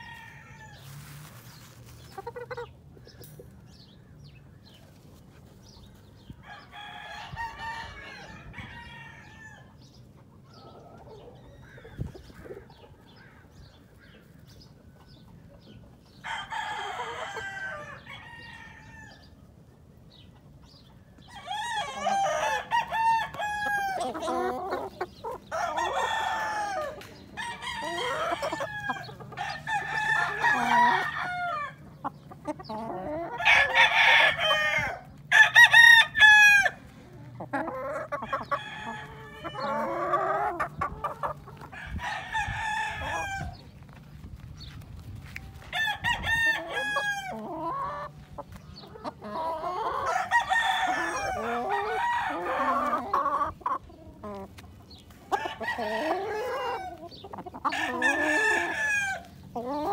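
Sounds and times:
roosters crowing: 0:00.0 - 0:03.4, 0:06.1 - 0:13.7, 0:15.6 - 0:19.4, 0:21.2 - 0:43.8, 0:45.5 - 0:59.9.

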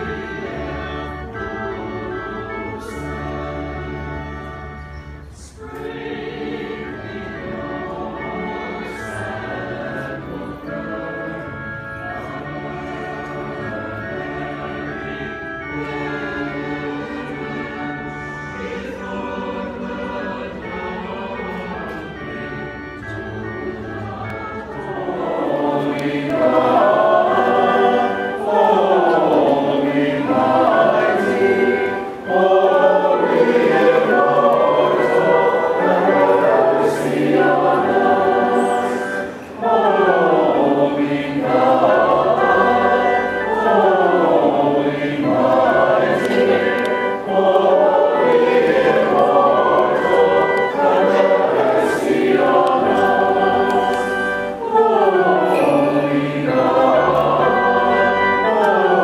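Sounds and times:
choir singing a slow hymn: 0:00.0 - 0:59.0.

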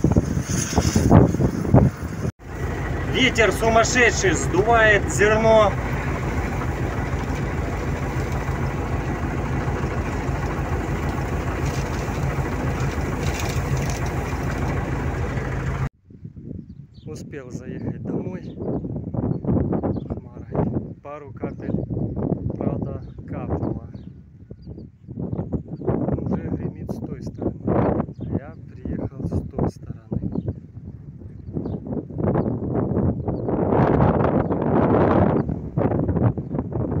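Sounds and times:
combine harvester running: 0:00.0 - 0:15.9
wind buffeting microphone: 0:00.0 - 0:37.0
auger pouring grain into trailer: 0:02.5 - 0:15.9.

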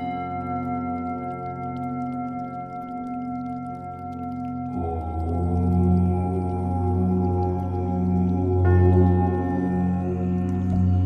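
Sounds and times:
bell-like drone: 0:00.0 - 0:11.0
deep om chant: 0:00.0 - 0:11.0.

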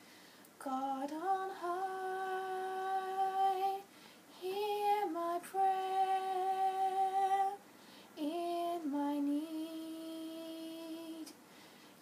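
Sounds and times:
singer breathing: 0:00.0 - 0:00.5, 0:03.9 - 0:04.3, 0:07.8 - 0:08.2, 0:11.5 - 0:12.0
girl singing unaccompanied: 0:00.6 - 0:11.4.

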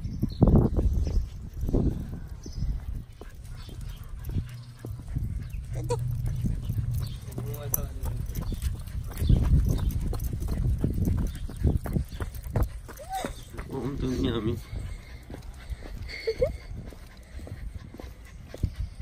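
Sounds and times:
low wind rumble on microphone: 0:00.0 - 0:19.0
footsteps on concrete: 0:00.3 - 0:19.0.

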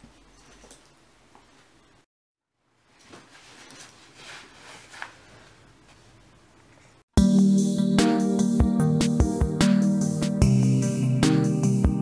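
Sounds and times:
fabric backpack rustling: 0:03.0 - 0:05.7.

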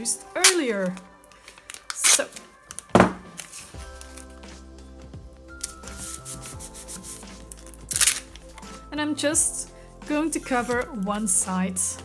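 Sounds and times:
soft background music: 0:00.0 - 0:12.0
packing tape rubbed onto cardstock: 0:05.6 - 0:08.3.

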